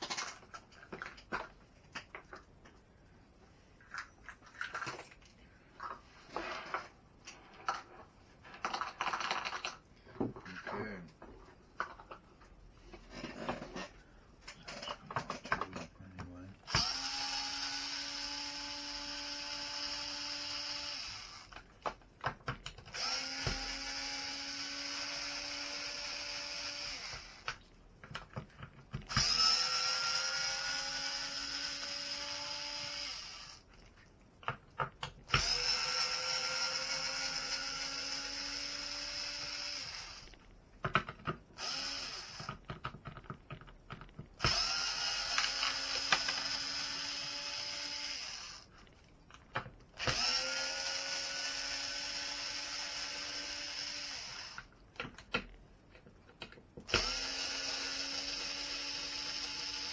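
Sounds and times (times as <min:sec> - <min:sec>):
cordless screwdriver whining: 0:16.7 - 0:21.6, 0:22.9 - 0:27.6, 0:29.1 - 0:33.6, 0:35.3 - 0:40.4, 0:41.6 - 0:42.6, 0:44.4 - 0:48.7, 0:50.0 - 0:54.7, 0:56.9 - 0:59.9.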